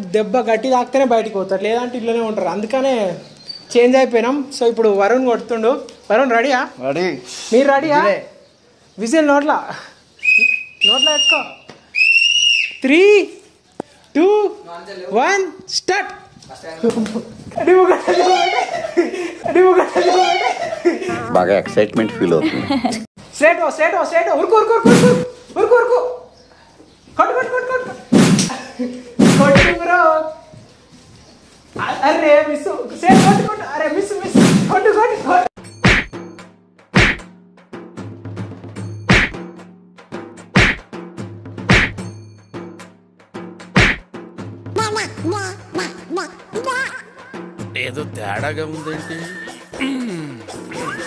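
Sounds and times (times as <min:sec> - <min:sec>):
shrill whistle blasts: 0:10.2 - 0:12.9, 0:48.9 - 0:49.7
stuffed bag striking a person: 0:28.1 - 0:28.5, 0:29.2 - 0:29.8, 0:35.8 - 0:36.2, 0:37.0 - 0:37.2, 0:39.1 - 0:39.4, 0:40.6 - 0:40.8, 0:41.7 - 0:42.0, 0:43.8 - 0:44.0
person speaking: 0:29.2 - 0:30.0, 0:33.0 - 0:34.9
background music: 0:35.6 - 0:51.0.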